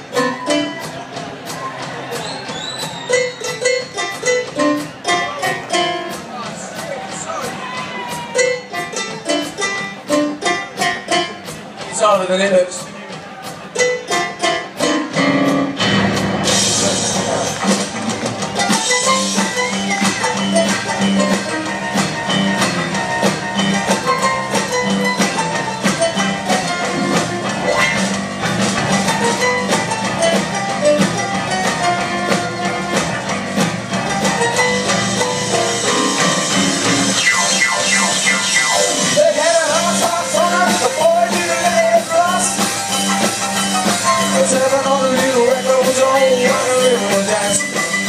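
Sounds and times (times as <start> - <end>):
plucked notes: 0.0 - 2.2, 2.8 - 48.0
piano: 0.0 - 12.0, 12.9 - 48.0
drum kit: 0.0 - 48.0
live band music: 0.0 - 48.0
upright double bass: 13.4 - 48.0
cymbals: 31.9 - 44.5.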